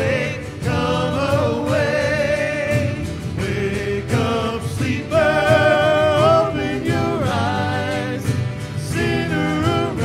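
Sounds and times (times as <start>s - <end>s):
acoustic guitars: 0.0s - 10.0s
voices singing in harmony: 0.0s - 10.0s.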